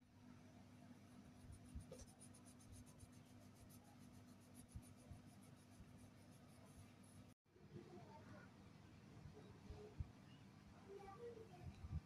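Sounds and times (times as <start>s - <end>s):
crayon scratching on paper: 1.3s - 7.4s.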